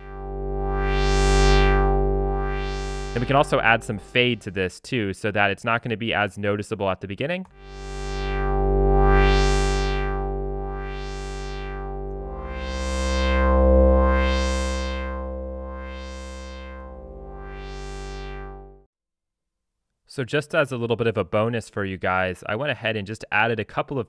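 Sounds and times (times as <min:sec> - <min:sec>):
synthesizer pad with wah: 0:00.0 - 0:04.4, 0:07.6 - 0:18.9.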